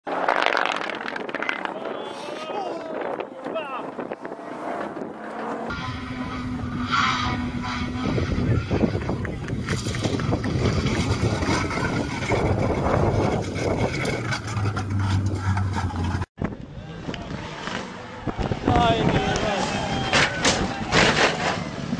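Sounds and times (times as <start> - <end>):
rally car engines at high revs: 0.1 - 2.1, 2.9 - 21.9
wind buffeting microphone: 1.0 - 5.8, 7.4 - 15.8, 18.2 - 20.9.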